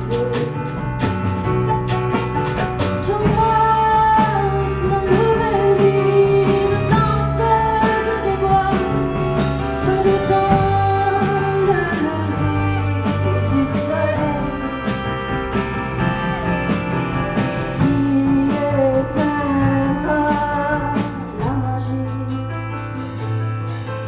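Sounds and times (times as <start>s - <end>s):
small band playing instrumental: 0.0s - 24.0s
violin melody: 1.5s - 19.4s
clarinet melody: 4.2s - 19.4s.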